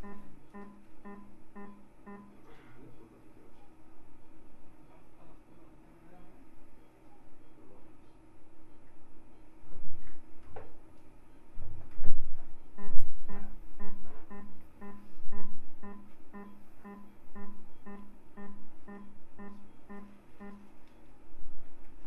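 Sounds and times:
repeating steady-pitched beep: 0.0 - 2.4, 12.6 - 20.7.

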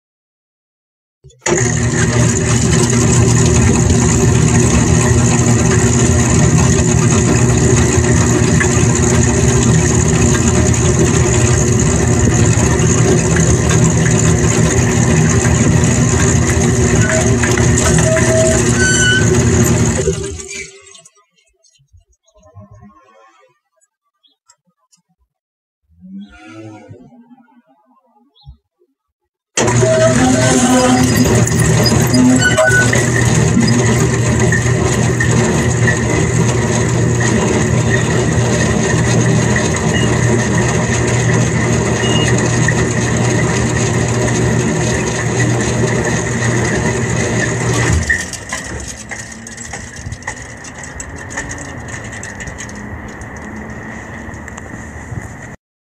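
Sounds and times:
gate opener motor hum and whine: 1.4 - 20.6, 29.6 - 54.8.

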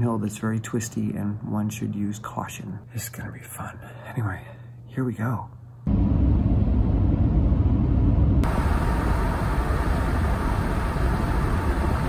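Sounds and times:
car road noise rumble: 5.9 - 12.0.

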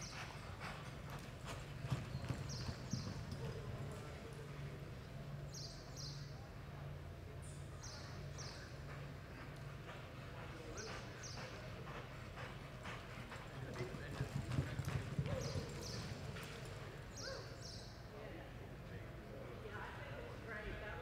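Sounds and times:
horse hooves on soft dirt: 0.0 - 6.2, 7.9 - 17.4.

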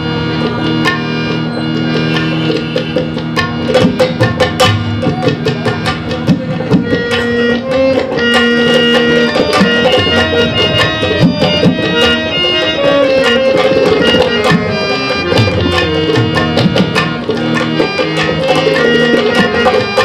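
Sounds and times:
harmonium playing: 0.0 - 20.0
tabla rhythm: 0.0 - 20.0.

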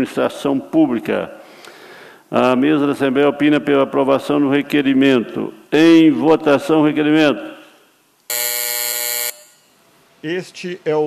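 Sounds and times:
electronic buzzer tone: 8.3 - 9.8.

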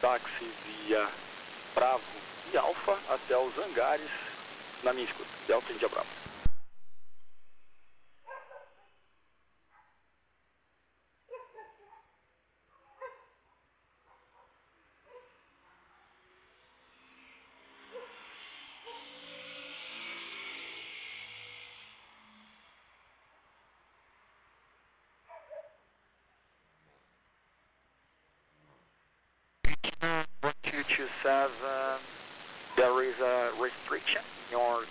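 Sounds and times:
hiss with low tones: 0.0 - 6.5, 16.2 - 23.5, 29.8 - 34.9
dog barking faintly: 8.2 - 8.9, 11.3 - 16.4, 25.2 - 25.9, 32.7 - 34.9.

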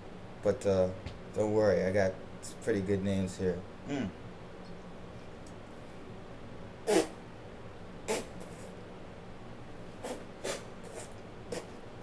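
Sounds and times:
man grunting: 3.9 - 4.2.

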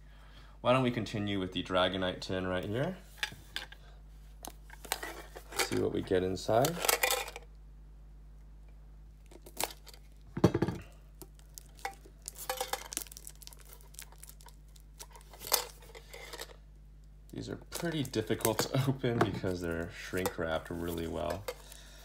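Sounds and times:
plastic shrink-wrap crinkling: 11.2 - 16.6.

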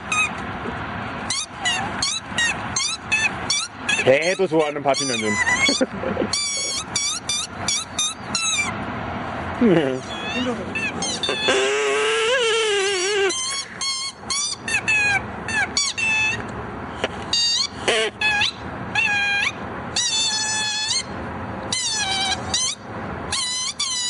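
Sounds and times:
high-pitched sliding squeaks: 0.0 - 0.4, 1.3 - 8.7, 10.1 - 16.4.

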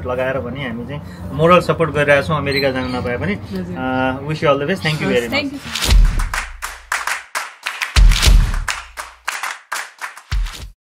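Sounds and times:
sharp hand claps: 5.7 - 10.8
deep thump: 5.8 - 6.9, 8.0 - 8.8.

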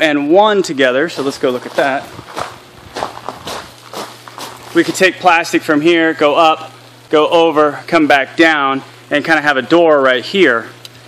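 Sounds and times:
footsteps on gravel: 0.7 - 5.1.

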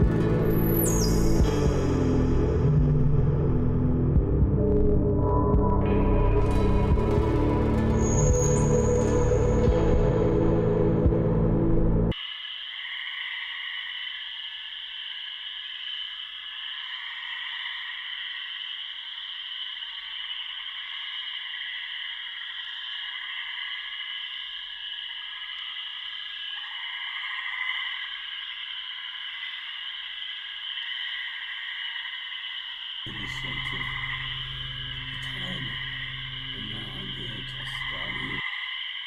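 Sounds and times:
high chirring drone: 0.0 - 12.2, 33.1 - 38.5.

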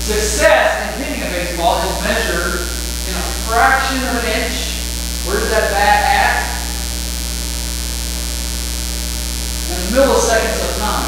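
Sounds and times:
man speaking: 0.0 - 6.8, 9.7 - 11.0
electrical mains hum: 0.0 - 11.0.

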